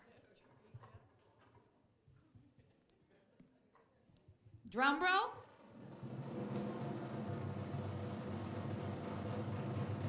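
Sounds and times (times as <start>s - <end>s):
drum roll: 5.6s - 10.0s.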